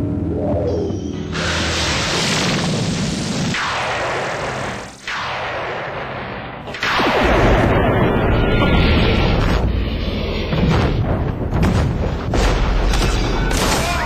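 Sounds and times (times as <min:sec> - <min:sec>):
booming explosions: 0:01.3 - 0:09.8.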